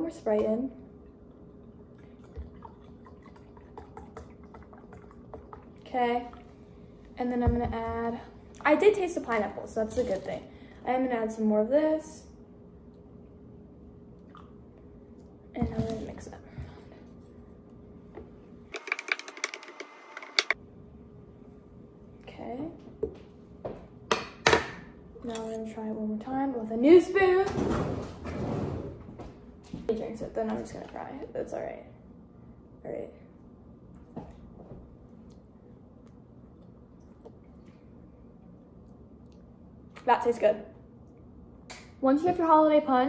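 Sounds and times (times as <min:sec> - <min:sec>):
small drips and ticks: 0:01.1 - 0:06.5.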